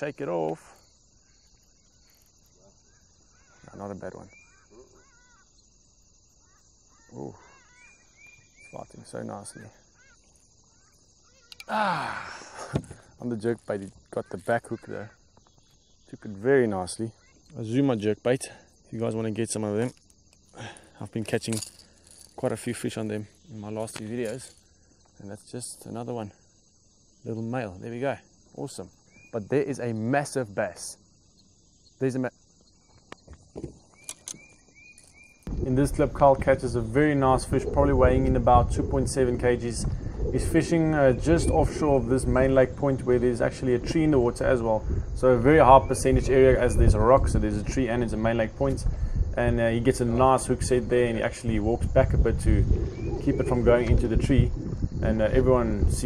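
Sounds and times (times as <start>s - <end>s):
crickets chirping: 0.0s - 56.0s
high insect drone: 0.0s - 56.0s
short bird chirps: 6.4s - 11.7s.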